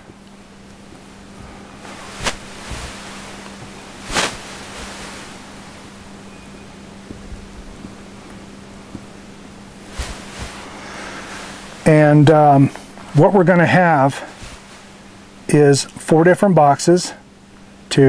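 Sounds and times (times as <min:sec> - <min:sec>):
wind-like hiss on microphone: 0:00.0 - 0:16.0.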